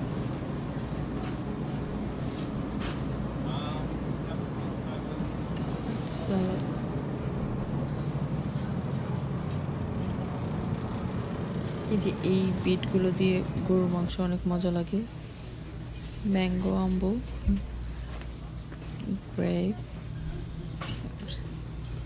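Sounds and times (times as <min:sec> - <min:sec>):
grocery store background hum: 0:00.0 - 0:22.0.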